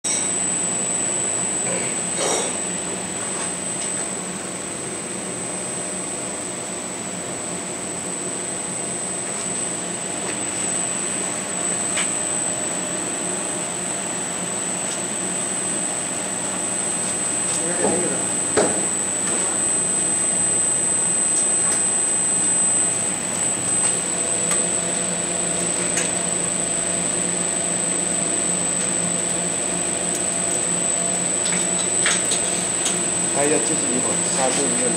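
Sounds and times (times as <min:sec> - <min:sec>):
heat press mechanical hum: 0:00.1 - 0:34.9
high-pitched whine: 0:08.2 - 0:34.9.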